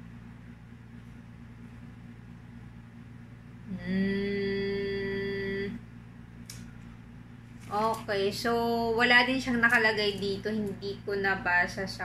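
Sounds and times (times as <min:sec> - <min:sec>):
woman humming: 0:03.6 - 0:05.9.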